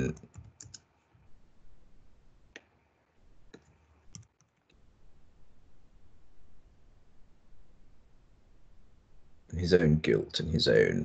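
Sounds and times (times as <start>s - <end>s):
faint keyboard keystrokes: 0.1s - 0.9s, 3.5s - 4.8s.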